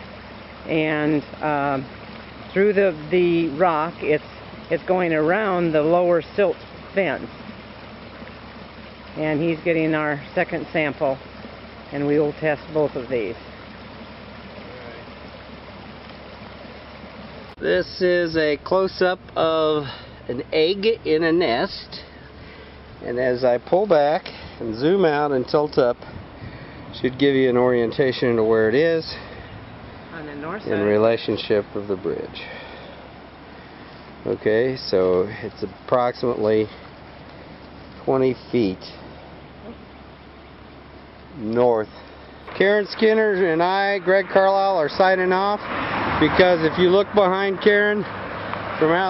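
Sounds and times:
water rushing over rocks: 0.0 - 49.0.

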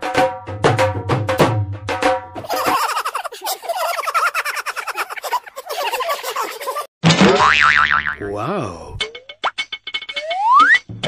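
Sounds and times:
bouncy comic music: 2.4 - 11.0
wobbling boing spring effect: 7.1 - 9.4.

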